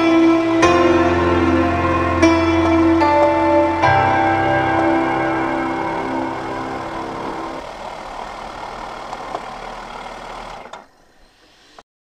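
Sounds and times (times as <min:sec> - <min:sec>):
background music: 0:00.0 - 0:07.6.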